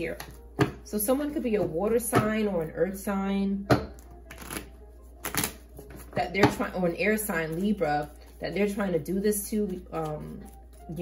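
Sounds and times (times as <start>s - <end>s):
cards being shuffled: 4.3s - 6.2s.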